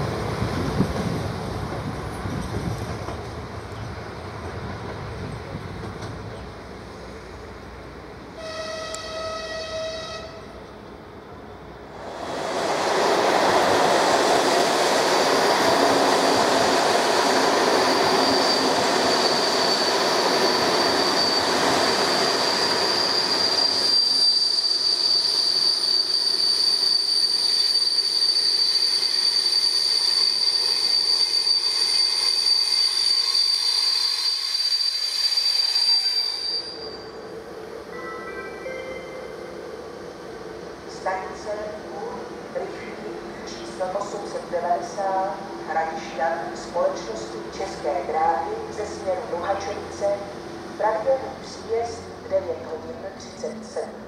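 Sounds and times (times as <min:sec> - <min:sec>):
train running over rails: 0:00.0 - 0:54.0
train horn blast: 0:08.4 - 0:10.6
high-pitched brake squeal: 0:17.3 - 0:39.6.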